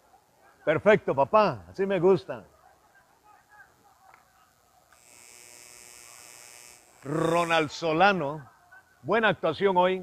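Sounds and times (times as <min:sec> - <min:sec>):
faint distant sounds: 0:00.0 - 0:10.0
steady high buzz: 0:04.9 - 0:08.0.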